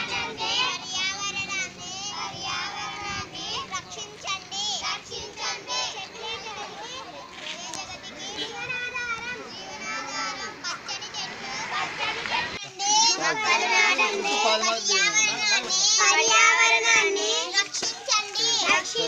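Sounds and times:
children calling out: 0.0 - 19.0.

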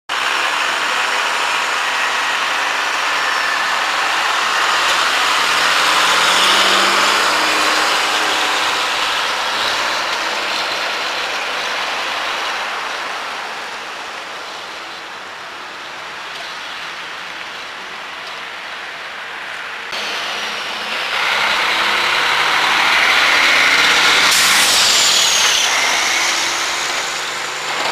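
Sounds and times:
vehicle passing: 3.5 - 13.4, 20.0 - 27.9.

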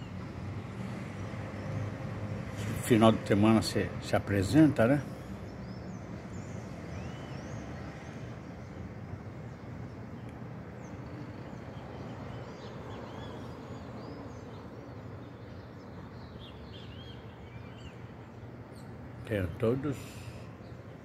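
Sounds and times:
distant city traffic hum: 0.0 - 21.0
small birds chirping: 0.0 - 21.0.

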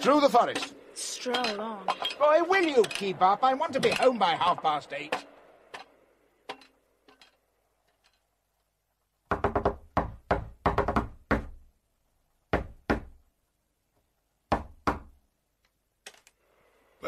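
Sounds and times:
knocking on wooden door: 9.3 - 11.6, 12.5 - 13.2.

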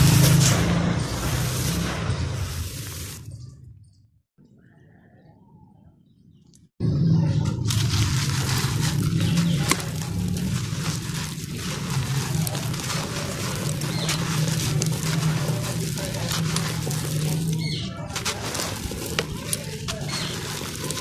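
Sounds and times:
sand-cement chunks crumbling: 0.0 - 3.2, 7.3 - 21.0.

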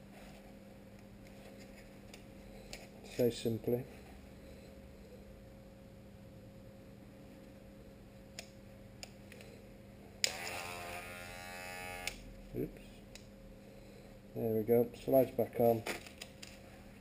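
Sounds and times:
hair clipper motor buzzing: 10.2 - 12.2.

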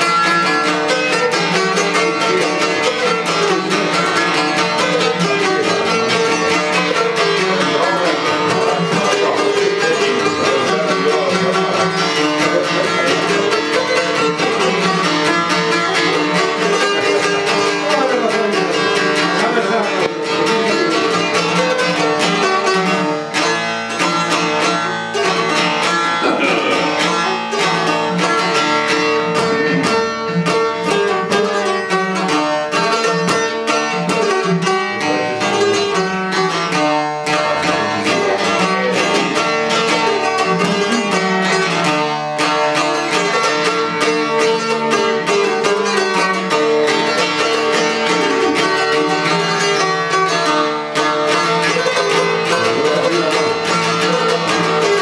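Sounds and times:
plucked lutes playing a tune: 0.0 - 55.0.

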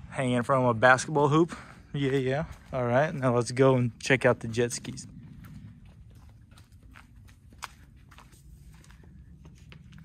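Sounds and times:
low steady rumble: 0.0 - 10.0
footsteps on concrete: 1.0 - 10.0.

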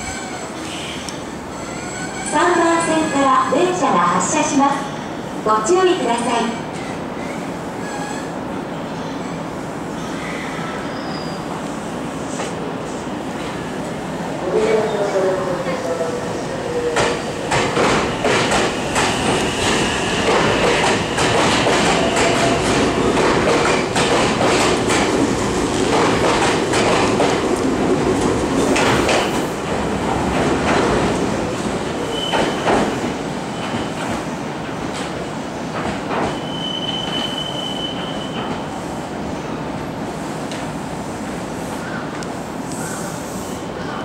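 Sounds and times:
high squeals: 36.3 - 38.5.

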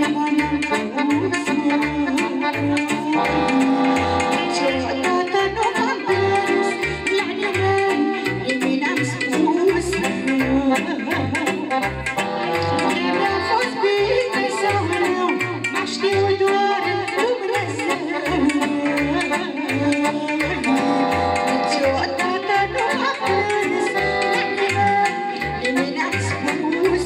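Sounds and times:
electronic keyboard party music: 0.0 - 27.0.

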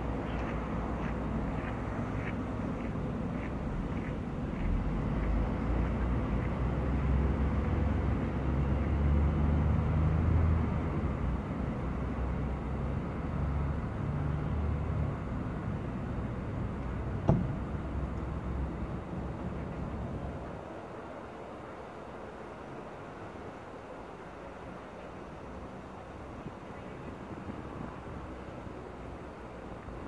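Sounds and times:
distant traffic rumble: 0.0 - 30.0.

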